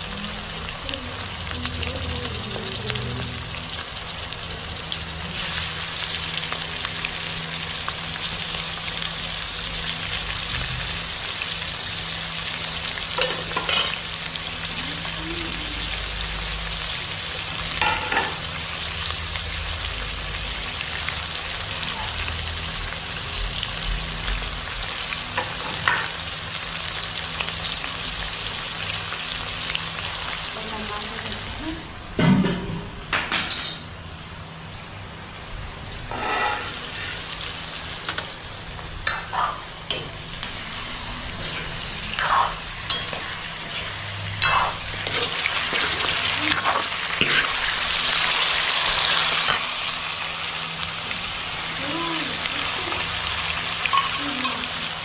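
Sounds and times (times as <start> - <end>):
chicken sizzling in hot oil: 0.0 - 31.7, 33.3 - 55.0.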